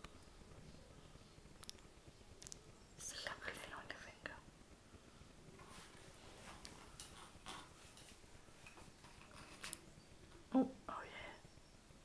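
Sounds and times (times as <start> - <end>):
faint clicks: 1.6 - 2.7
person whispering: 3.0 - 4.5, 10.5 - 11.4.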